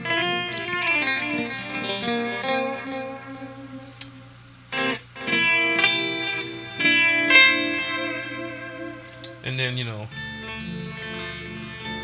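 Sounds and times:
electric guitar blues notes: 0:00.0 - 0:12.0.

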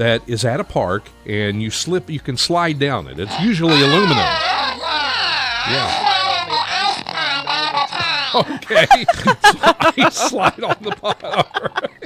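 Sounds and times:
man babbling in high voice: 0:03.2 - 0:08.6.

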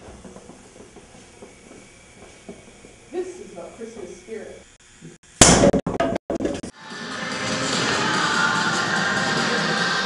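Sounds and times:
music: 0:06.7 - 0:10.0.

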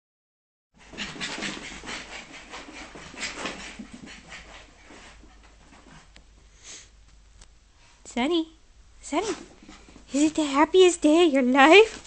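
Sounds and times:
small dog panting: 0:00.8 - 0:06.2.

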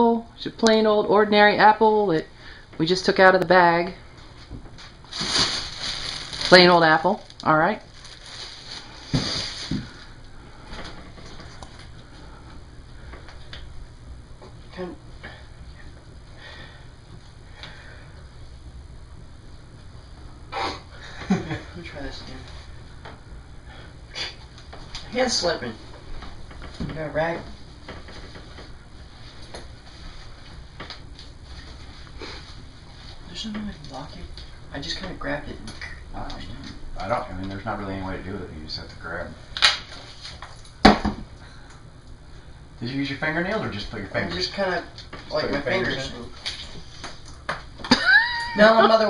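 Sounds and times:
low steady background noise: 0:00.0 - 0:49.0.

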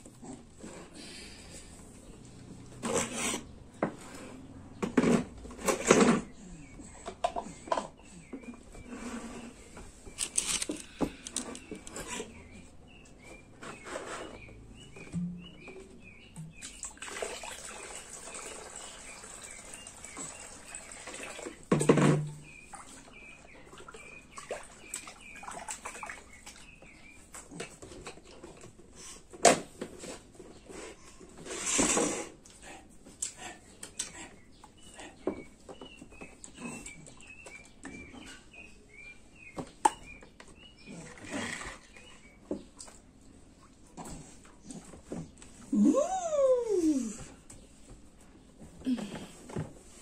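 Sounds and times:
bird chirps: 0:11.4 - 0:16.8
water pouring into plastic tub: 0:16.7 - 0:21.7.

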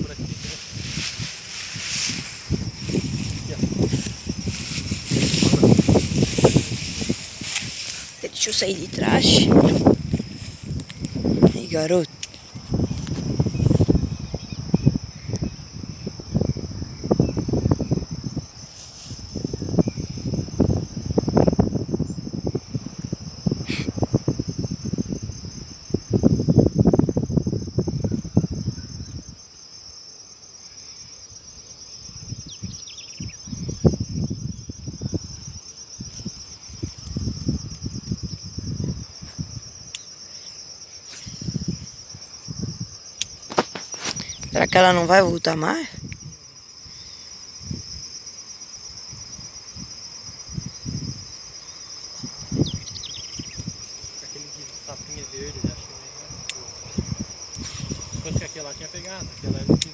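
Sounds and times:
low rumbling microphone noise: 0:00.0 - 0:18.6
high-pitched insect chorus: 0:00.0 - 0:59.9.

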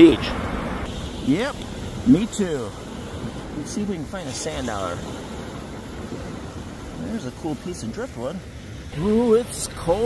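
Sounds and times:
rushing beach noise: 0:00.0 - 0:10.0.

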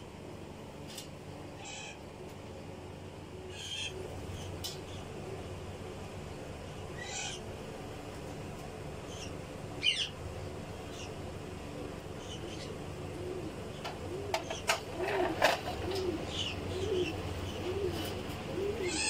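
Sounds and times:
pigeons cooing: 0:03.4 - 0:05.4, 0:10.9 - 0:19.0.

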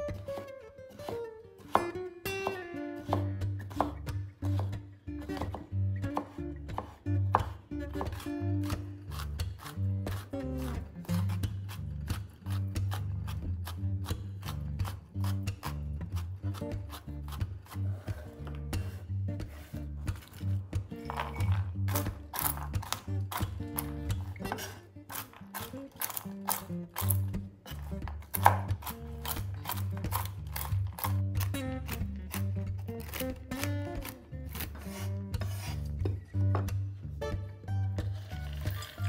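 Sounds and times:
background music: 0:00.0 - 0:39.0
knife chopping nuts on wooden board: 0:06.2 - 0:10.3, 0:21.1 - 0:32.4
knife tapping cutting board: 0:28.3 - 0:28.8.

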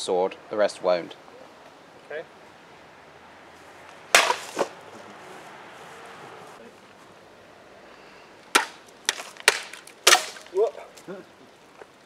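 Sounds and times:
sword cutting plastic bottle: 0:04.2 - 0:04.7.

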